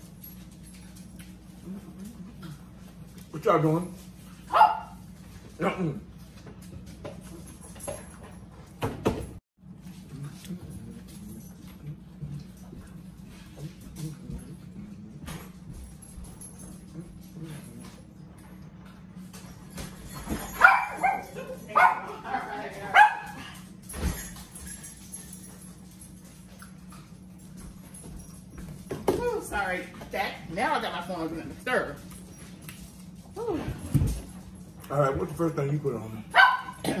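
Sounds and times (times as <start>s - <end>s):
low steady hum: 0.0s - 37.0s
dog barking: 4.5s - 5.0s, 20.6s - 22.2s, 22.9s - 23.4s, 36.3s - 37.0s.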